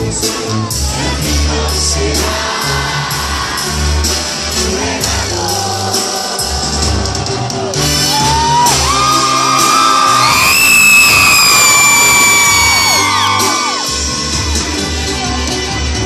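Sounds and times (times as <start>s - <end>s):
live brass band music over loudspeakers: 0.0s - 16.0s
crowd screaming and whooping: 5.3s - 14.6s.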